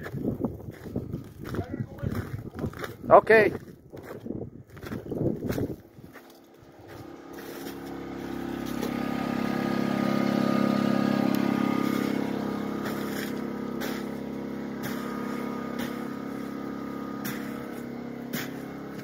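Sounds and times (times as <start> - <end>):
engine droning: 4.8 - 19.0.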